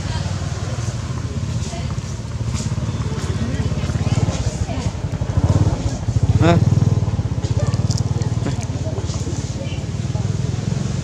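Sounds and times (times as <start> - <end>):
engine idling: 0.0 - 11.0
faint voices: 0.0 - 11.0.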